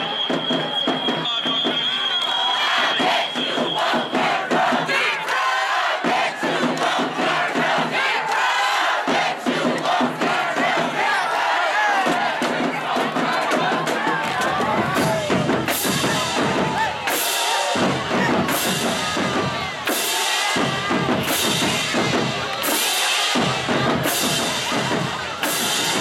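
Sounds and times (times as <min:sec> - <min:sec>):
crowd yelling and chanting: 0:00.0 - 0:26.0.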